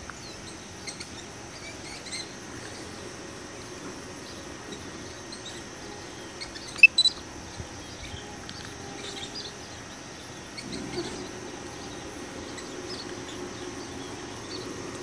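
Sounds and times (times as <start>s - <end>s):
bird chirps: 6.3s - 7.2s.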